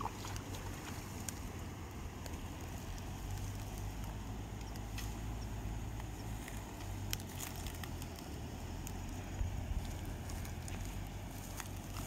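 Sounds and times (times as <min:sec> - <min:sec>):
fish splashing at water surface: 0:00.0 - 0:01.5
wind rumble on microphone: 0:00.0 - 0:12.0.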